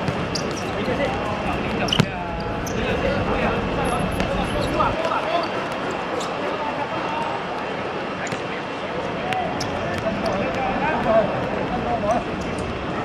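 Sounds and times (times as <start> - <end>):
football kicked and bouncing: 0.0 - 2.2.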